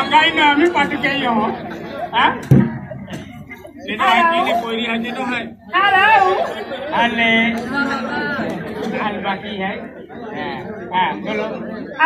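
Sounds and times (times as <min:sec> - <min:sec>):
loud animated talking: 0:00.0 - 0:12.0.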